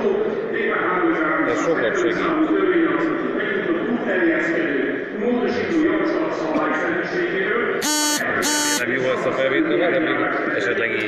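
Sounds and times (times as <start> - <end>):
short electronic buzzes: 7.8 - 8.8.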